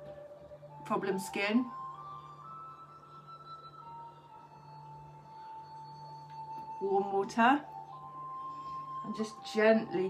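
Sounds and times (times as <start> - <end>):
slow relaxing background music: 0.0 - 10.0.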